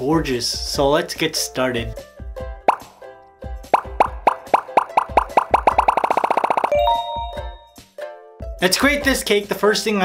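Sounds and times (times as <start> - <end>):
popping bloop sounds rising in pitch: 2.7 - 2.9, 3.7 - 7.6.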